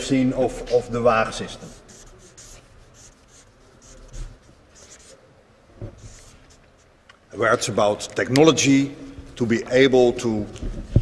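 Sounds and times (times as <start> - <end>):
marker writing on paper: 1.3 - 5.2, 6.0 - 7.0.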